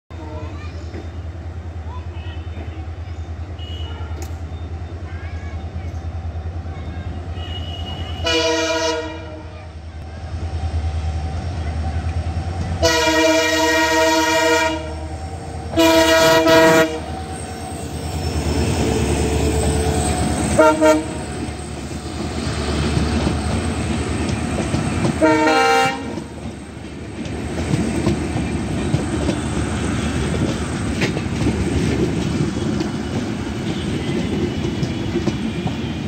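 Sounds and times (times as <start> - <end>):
locomotive horn blasts: 3.6 - 4.3, 7.3 - 9.5, 12.8 - 15.1, 15.7 - 17.2, 20.5 - 21.3, 25.2 - 26.3.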